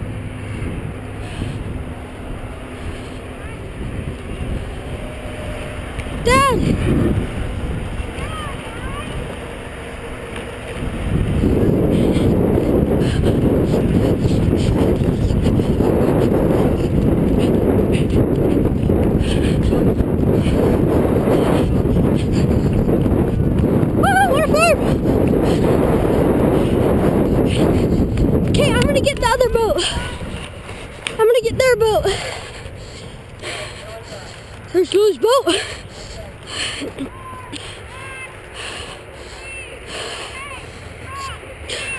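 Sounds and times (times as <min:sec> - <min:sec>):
wind on microphone: 0:00.0 - 0:09.6, 0:10.6 - 0:32.6
person shouting: 0:06.2 - 0:06.7, 0:24.0 - 0:24.8, 0:37.0 - 0:38.4.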